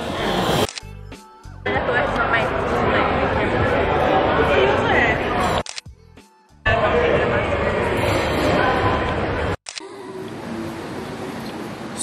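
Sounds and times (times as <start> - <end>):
voices chattering and laughing: 1.7 - 5.6.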